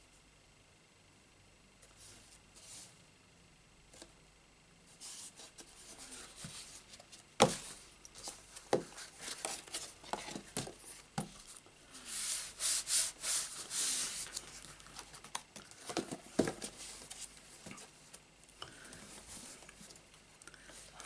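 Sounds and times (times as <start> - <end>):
card sliding and rubbing: 12.0 - 14.6.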